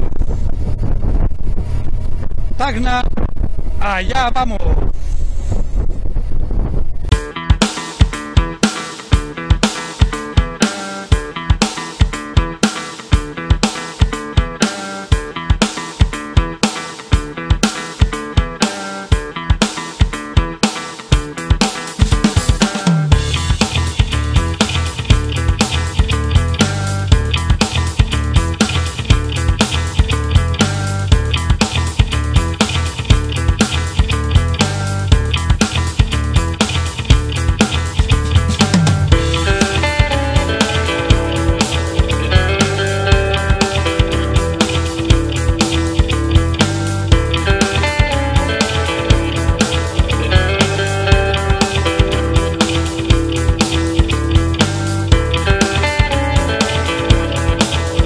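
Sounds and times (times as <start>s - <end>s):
bass part: 0.0s - 8.6s, 23.1s - 58.0s
rock music with drums and guitar: 7.1s - 58.0s.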